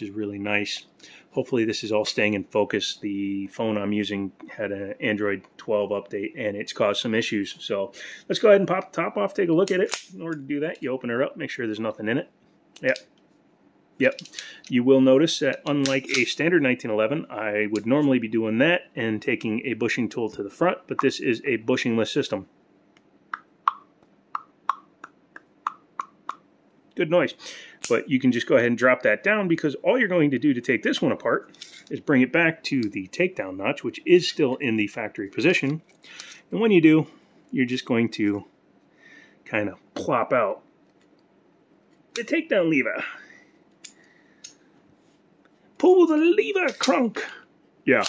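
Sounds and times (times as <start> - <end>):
person speaking: 0.0 - 13.1, 14.0 - 22.5, 39.5 - 40.6, 42.2 - 43.3, 45.8 - 48.0.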